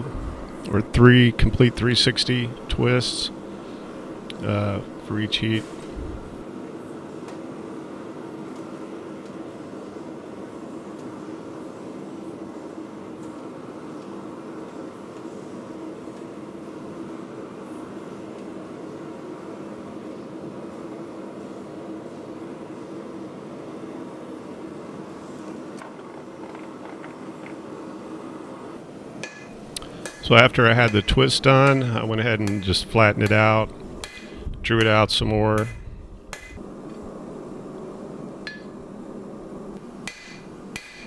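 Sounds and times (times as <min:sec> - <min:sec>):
machinery roar with low hum: 0:00.0 - 0:41.0.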